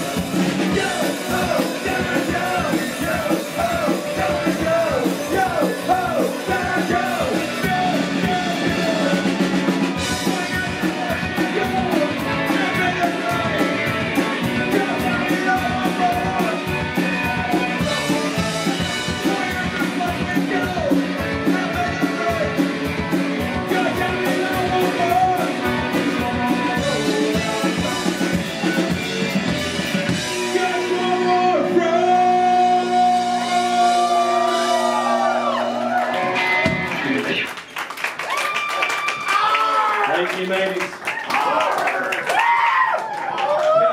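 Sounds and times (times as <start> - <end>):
quick steady drumbeat: 0.0 - 30.4
live rock band with fiddle: 0.0 - 37.5.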